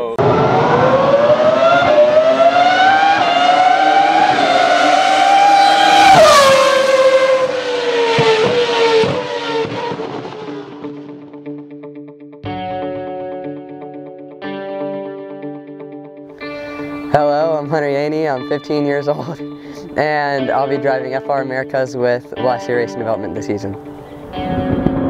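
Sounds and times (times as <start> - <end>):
race car engine passing by: 0.2 - 11.3
plucked string music: 10.5 - 25.0.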